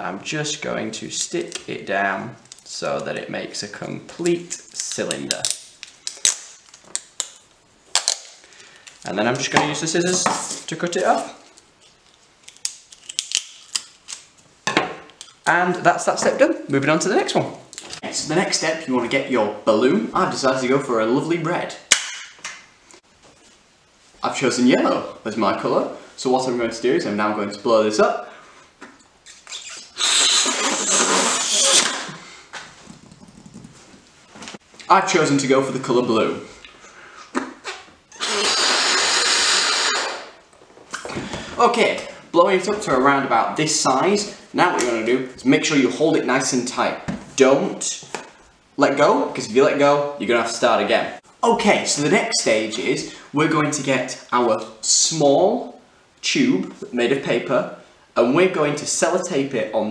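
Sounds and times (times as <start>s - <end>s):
breath blowing up balloon: 29.5s - 33.7s, 38.2s - 40.4s.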